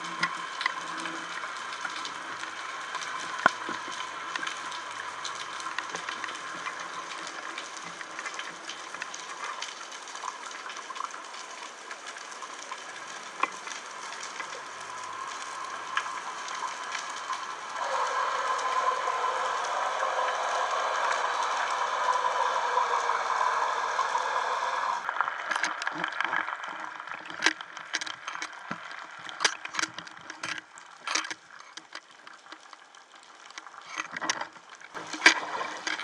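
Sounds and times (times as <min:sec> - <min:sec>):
underwater crackle of tiny clicks: 0:00.0 - 0:17.8, 0:25.0 - 0:36.0
rushing bubbling water: 0:00.0 - 0:31.1, 0:34.8 - 0:36.0.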